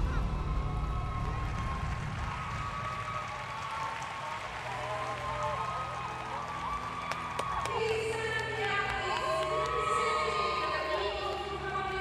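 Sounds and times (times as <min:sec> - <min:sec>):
crowd applauding: 0:00.0 - 0:12.0.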